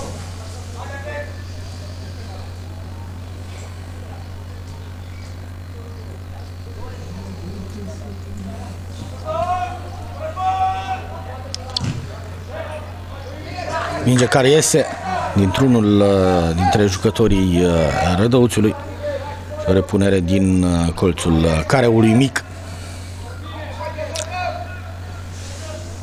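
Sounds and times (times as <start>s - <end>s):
steady low hum: 0.0s - 26.0s
voices calling out: 0.0s - 26.0s
ball being kicked: 11.7s - 12.2s.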